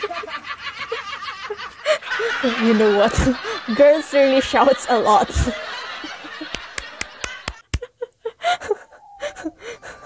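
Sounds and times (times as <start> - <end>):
woman laughing hard: 0.0 - 10.0.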